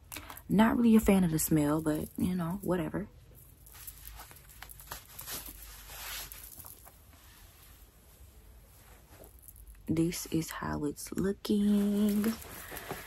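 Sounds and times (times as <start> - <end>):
satin scarf rustling: 1.9 - 9.7, 11.6 - 13.0.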